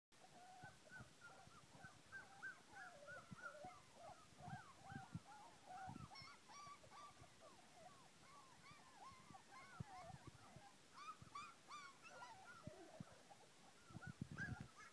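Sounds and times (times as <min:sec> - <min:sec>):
puppies whining and whimpering: 0:00.2 - 0:14.9.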